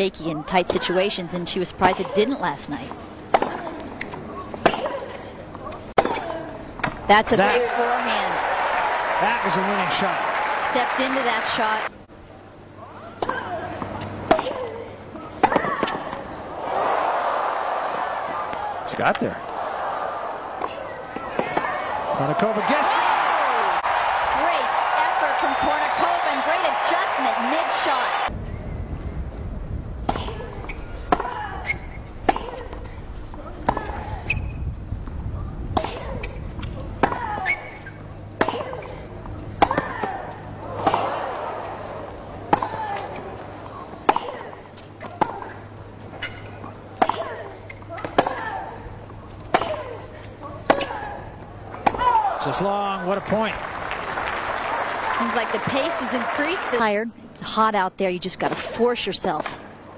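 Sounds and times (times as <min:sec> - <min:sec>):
low broadcast hum: 0:00.0 - 0:59.9
rackets hitting tennis ball: 0:01.8 - 0:08.4, 0:13.0 - 0:16.8, 0:30.0 - 0:34.4, 0:35.7 - 0:52.3
crowd cheering and applauding: 0:07.5 - 0:11.9, 0:21.9 - 0:28.3, 0:52.2 - 0:56.9.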